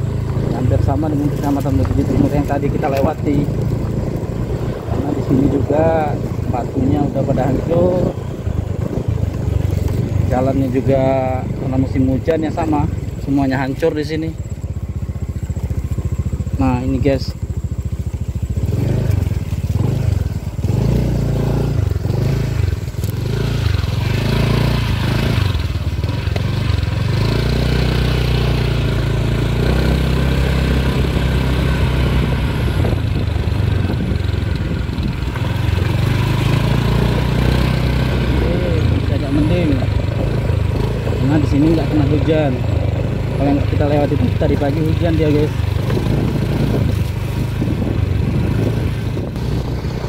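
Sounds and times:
small motorcycle engine: 0:00.0 - 0:50.0.

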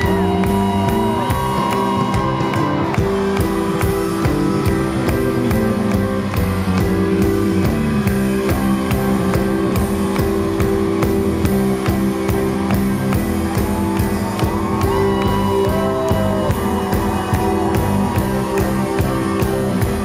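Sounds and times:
drum kit steady beat: 0:00.0 - 0:20.0
live band playing: 0:00.0 - 0:20.0.

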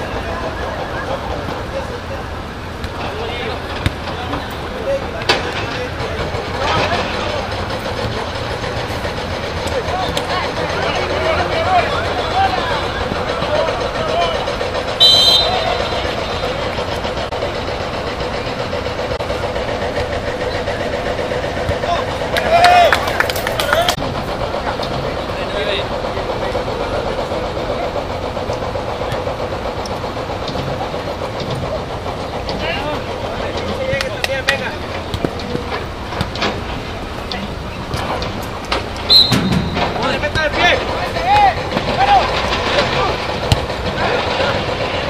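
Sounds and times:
players calling and shouting: 0:00.0 - 0:45.0
road traffic rumble: 0:00.0 - 0:45.0
short high whistle blast: 0:15.0 - 0:16.1, 0:39.1 - 0:39.7.

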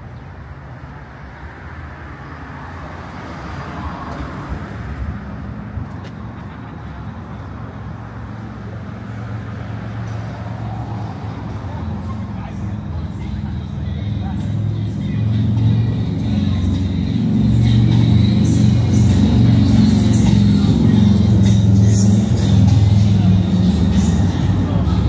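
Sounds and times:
vehicle engine running: 0:11.4 - 0:25.0.

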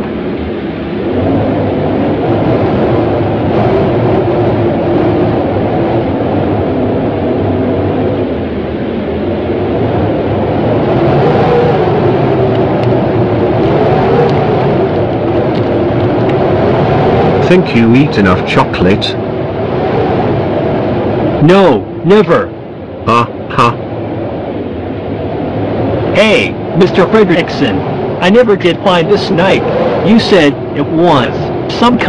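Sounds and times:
loud rumbling drone: 0:00.0 - 0:32.0.

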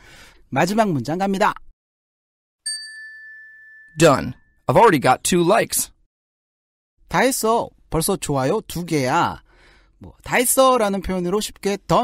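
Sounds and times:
bright chime ding: 0:02.7 - 0:04.6.

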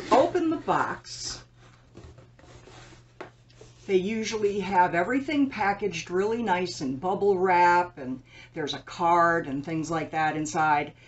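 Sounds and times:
cardboard rubbing scrape: 0:00.0 - 0:03.9.

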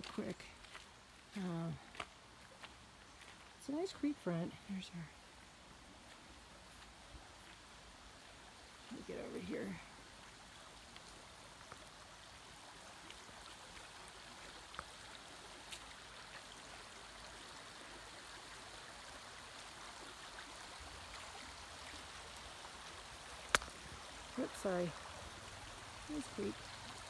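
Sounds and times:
creek running over pebbles: 0:00.0 - 0:27.0.

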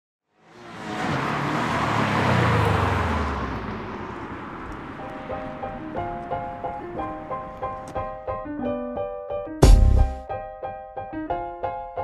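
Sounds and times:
car engine revving: 0:00.4 - 0:07.9
piano music: 0:04.8 - 0:12.0.

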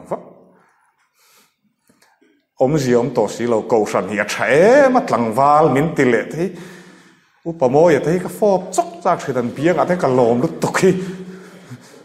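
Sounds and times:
man talking: 0:00.0 - 0:00.4, 0:02.6 - 0:06.7, 0:07.4 - 0:12.0.

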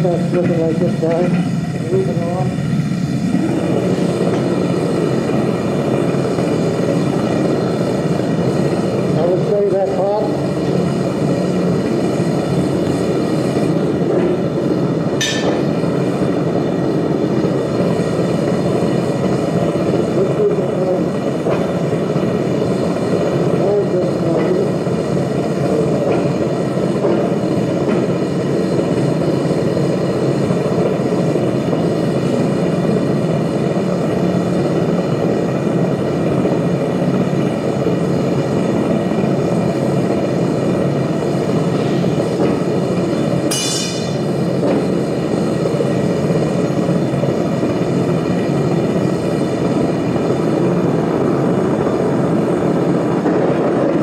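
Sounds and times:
furnace burner flame rushing: 0:00.0 - 0:54.0
high-pitched ring: 0:43.5 - 0:44.2.

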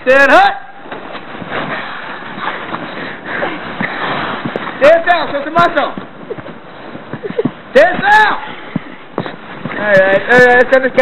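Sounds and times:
scuffling on snow: 0:01.2 - 0:07.5.

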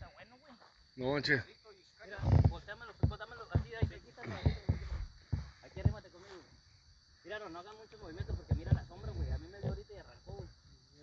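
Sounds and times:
men talking indistinctly: 0:00.0 - 0:04.9, 0:05.6 - 0:06.6, 0:07.2 - 0:11.0
dull low thumps: 0:02.3 - 0:06.1, 0:08.2 - 0:10.5.

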